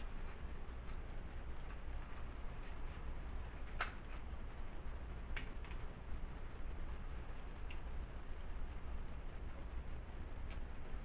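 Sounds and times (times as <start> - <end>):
low hum: 0.0 - 11.0
crab shell cracking: 3.7 - 4.1.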